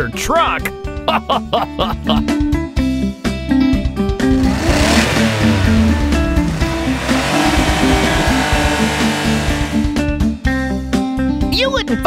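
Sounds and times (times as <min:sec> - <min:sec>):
upbeat background music: 0:00.0 - 0:12.0
cartoon truck engine revving: 0:04.2 - 0:10.0.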